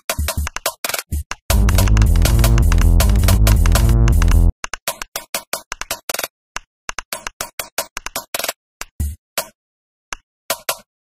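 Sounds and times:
chopped electronic music: 1.5 - 4.5.

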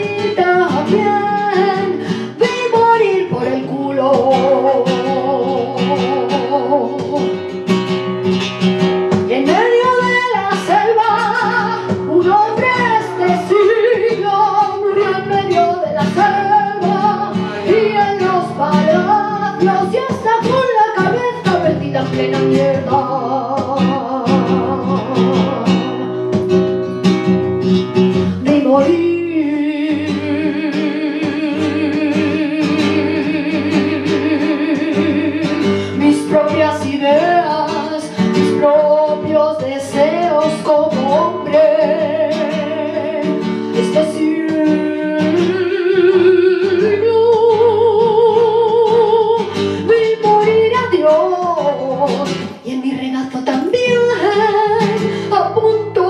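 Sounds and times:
flamenco guitar: 0.0 - 56.0
woman singing flamenco: 0.0 - 56.0.

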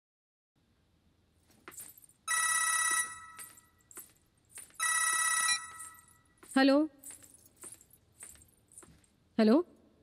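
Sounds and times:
phone electronic ring tone: 2.3 - 3.6, 4.8 - 6.1.

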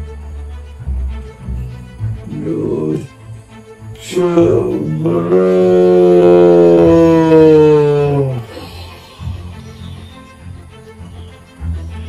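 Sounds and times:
man groaning: 2.2 - 3.1, 4.0 - 9.6.

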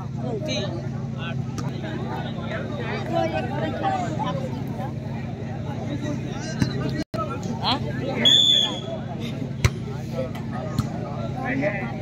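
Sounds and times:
crowd chatter: 0.0 - 12.0
referee's whistle: 8.2 - 8.9.

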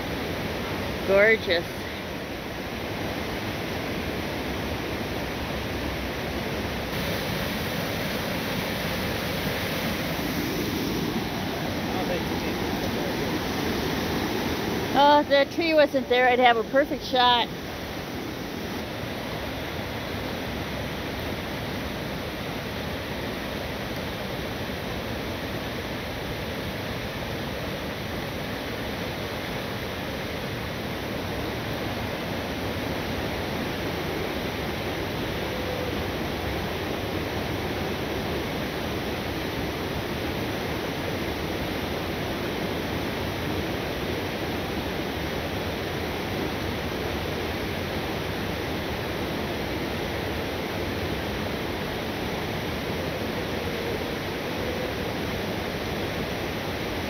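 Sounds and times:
waterfall rushing through rocks: 0.0 - 57.0.

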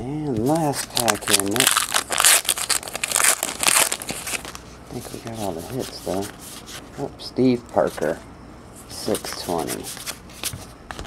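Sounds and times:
wrapper tearing and crinkling: 0.5 - 4.6.

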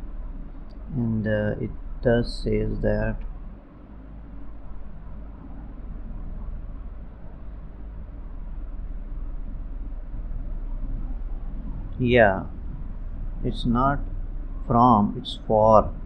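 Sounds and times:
low hum: 0.0 - 16.0
low rumble and hiss: 0.0 - 16.0.

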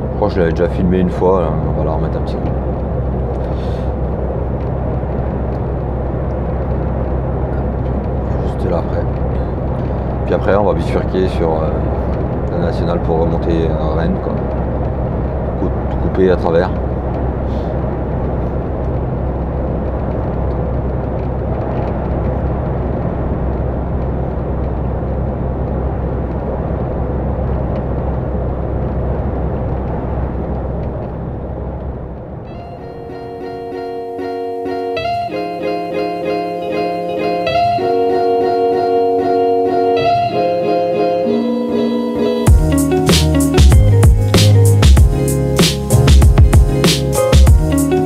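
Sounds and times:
truck road and engine noise: 0.0 - 48.0
music of held chords: 32.5 - 48.0.

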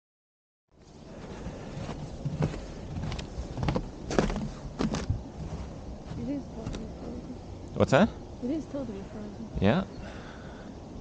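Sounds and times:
steady low rumble: 0.8 - 11.0
footsteps on snowy wooden stairs: 1.1 - 6.9.

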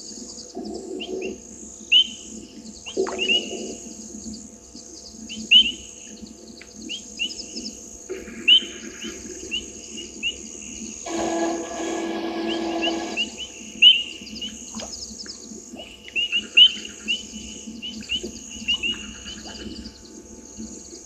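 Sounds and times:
low buzzing hum: 0.0 - 21.0
steady high-pitched hiss: 0.0 - 21.0.

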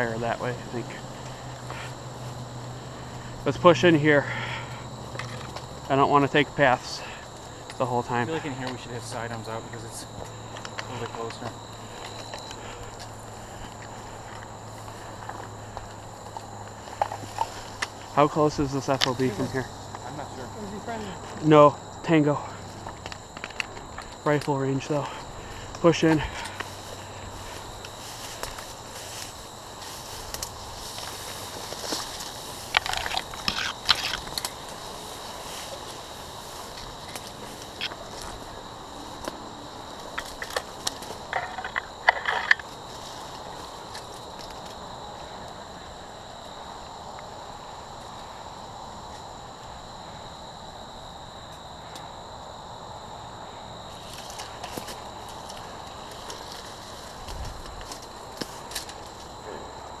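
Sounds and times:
high insect drone: 0.0 - 60.0
footsteps crushing dry grass: 10.1 - 21.5, 25.2 - 44.8, 54.0 - 59.4
brush snapping: 30.1 - 36.0.

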